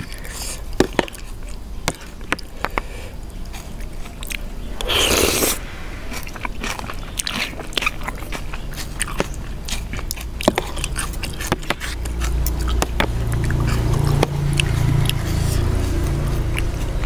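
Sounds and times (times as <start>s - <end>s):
wet chewing: 0.0s - 17.0s
noodles slurped: 3.6s - 17.0s.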